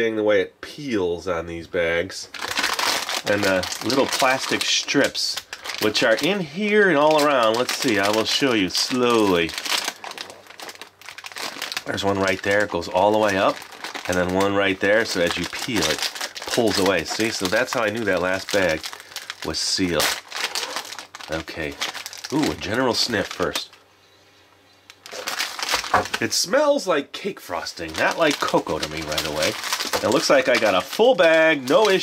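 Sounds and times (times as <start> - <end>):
plastic bag crinkling: 2.3 - 23.8, 24.8 - 26.4, 27.5 - 32.0.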